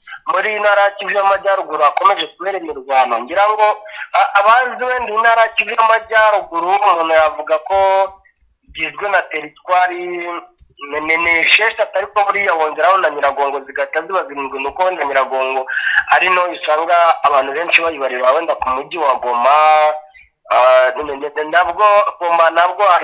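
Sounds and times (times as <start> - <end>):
person talking: 0.0 - 23.0.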